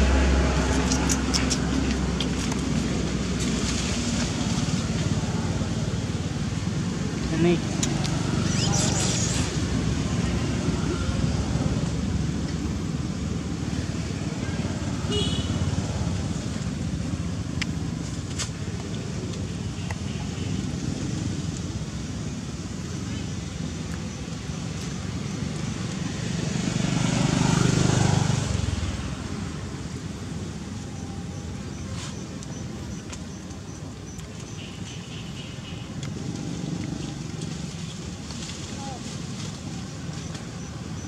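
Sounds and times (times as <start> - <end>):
road traffic rumble: 0.0 - 41.0
vehicle passing: 25.6 - 29.7.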